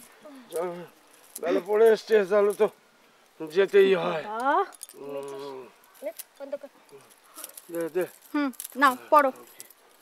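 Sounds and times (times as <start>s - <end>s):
bangles jingling: 3.5s - 10.0s.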